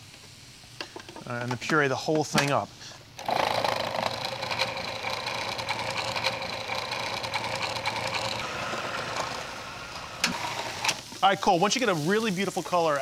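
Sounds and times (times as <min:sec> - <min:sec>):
food processor whirring: 0:03.2 - 0:11.2.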